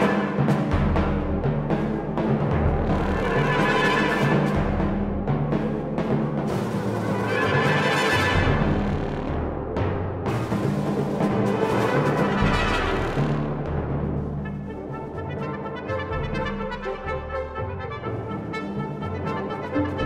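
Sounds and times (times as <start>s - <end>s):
timpani notes: 0.0s - 20.0s
brass ensemble playing: 7.2s - 9.0s, 11.5s - 13.7s, 14.4s - 20.0s.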